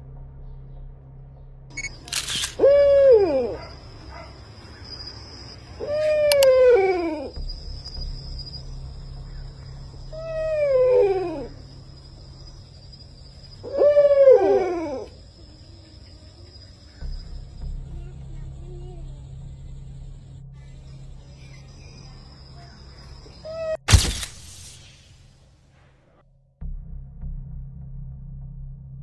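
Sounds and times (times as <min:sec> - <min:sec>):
long wailing cries: 0:02.6 - 0:04.1, 0:05.8 - 0:07.4, 0:10.1 - 0:11.8, 0:13.6 - 0:16.4.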